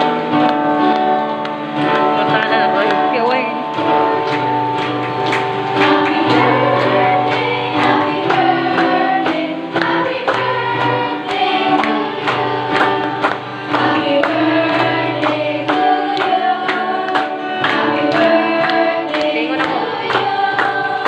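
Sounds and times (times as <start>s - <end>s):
choir singing a hymn: 0.0s - 1.0s, 5.6s - 21.0s
hands clapping on the beat: 0.0s - 21.0s.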